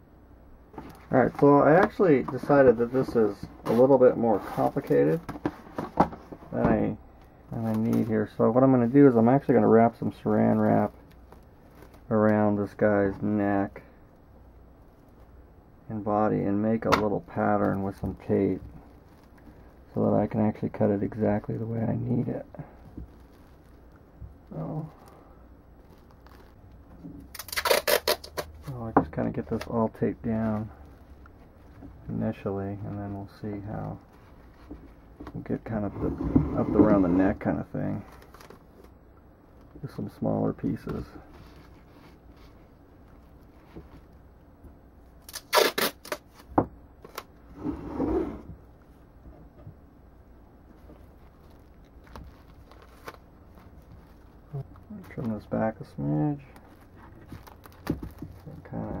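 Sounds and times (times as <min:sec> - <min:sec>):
plastic wrap rustling: 0:00.8 - 0:13.7, 0:16.7 - 0:35.8, 0:36.9 - 0:44.2, 0:45.1 - 0:47.6, 0:50.7 - 0:59.0
cling film crackling: 0:16.7 - 0:35.4, 0:45.0 - 0:47.4, 0:50.7 - 0:59.0
tape snapping: 0:27.2 - 0:28.6, 0:45.2 - 0:47.3.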